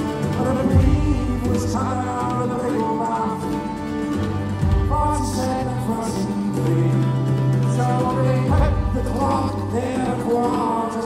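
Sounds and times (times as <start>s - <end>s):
bowed fiddle melody: 0.0s - 11.0s
drum kit: 0.0s - 11.0s
guitar: 0.0s - 11.0s.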